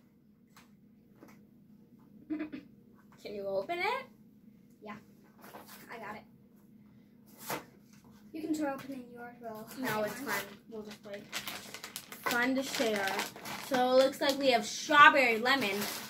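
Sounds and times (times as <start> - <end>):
candy wrapper rustling: 9.8 - 16.0
sharp wrapper crackle: 10.2 - 14.6, 15.4 - 16.0.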